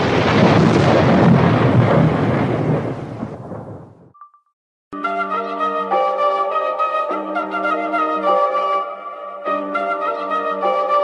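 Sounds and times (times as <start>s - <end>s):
thunder-like rumbling: 0.0s - 4.1s.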